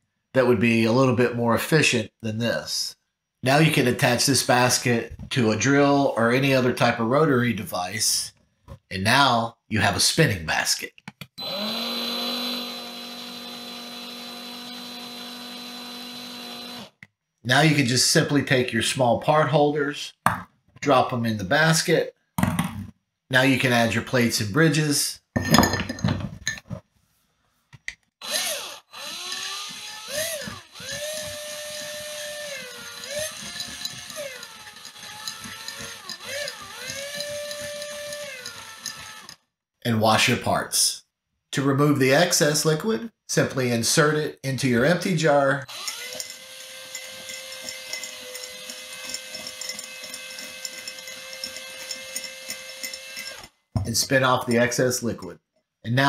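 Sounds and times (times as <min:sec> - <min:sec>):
cordless drill motor whining: 0:11.4 - 0:17.0, 0:28.2 - 0:39.4, 0:45.7 - 0:53.5.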